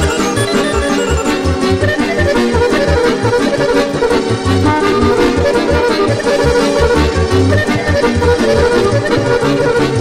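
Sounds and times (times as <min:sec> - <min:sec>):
lively folk dance music: 0:00.0 - 0:10.0.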